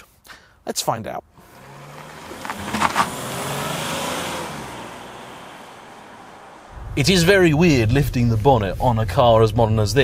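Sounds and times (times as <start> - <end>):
car engine and tyre noise: 1.3 - 10.0.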